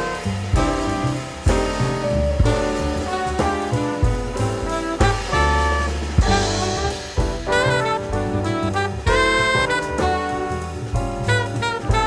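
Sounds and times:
drum strikes: 0.0 - 12.0
jazz band playing: 0.0 - 12.0.

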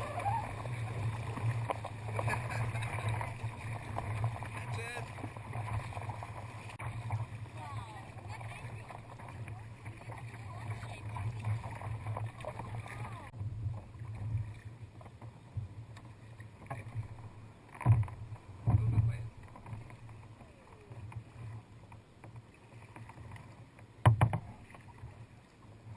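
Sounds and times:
water splashing against kayak hull: 0.0 - 25.9.

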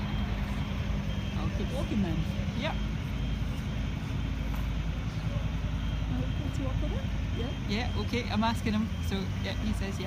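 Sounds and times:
heavy engine rumbling: 0.0 - 10.0.

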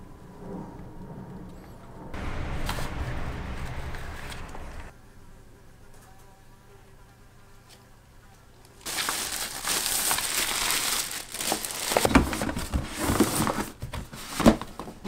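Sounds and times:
plastic bag handling: 8.8 - 13.8
plastic crinkling rustle: 8.8 - 14.7.

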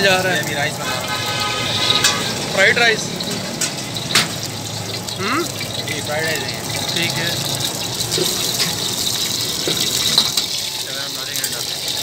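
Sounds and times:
hot oil hissing in a wok: 0.0 - 12.0
ladle clinking and scraping a wok: 0.1 - 12.0.

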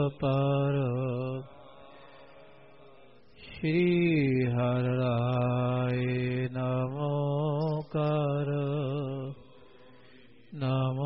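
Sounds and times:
man chanting: 0.0 - 1.9, 2.5 - 11.0.

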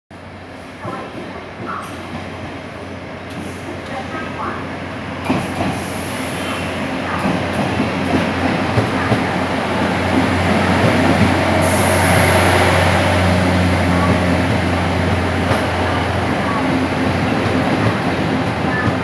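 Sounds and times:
diesel train engine: 1.7 - 19.0.

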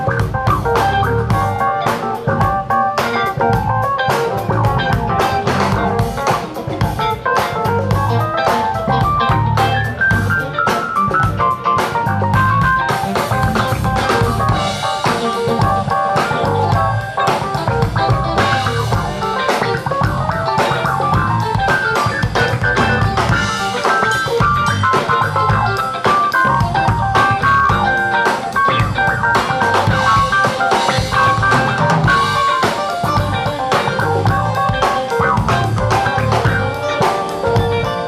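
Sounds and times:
drum kit: 0.0 - 38.0
electric guitar: 0.0 - 38.0
live band playing: 0.0 - 38.0.

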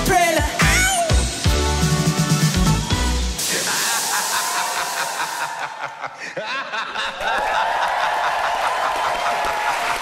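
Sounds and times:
spark fountains hissing: 1.9 - 6.0.

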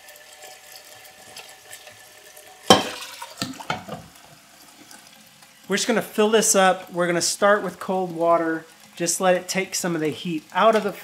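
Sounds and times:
tap running into metal pot: 2.6 - 4.2
glass flask clinking in pot: 2.7 - 4.0.

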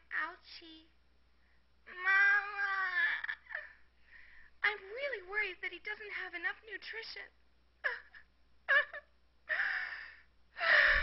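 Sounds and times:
person gasping: 9.5 - 11.0.

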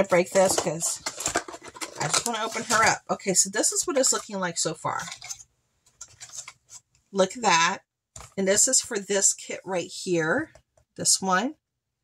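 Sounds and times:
cardboard box and paper rustling: 0.0 - 3.0.

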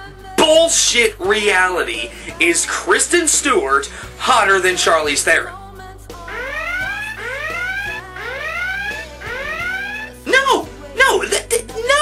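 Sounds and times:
whooping alarm: 6.3 - 10.4.

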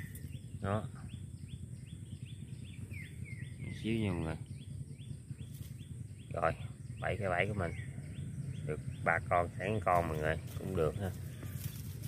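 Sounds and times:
falling chirps: 0.0 - 2.1.

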